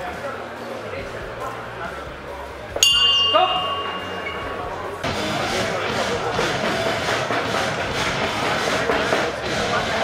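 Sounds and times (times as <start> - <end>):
crowd voices: 0.0 - 10.0
music playing: 1.1 - 10.0.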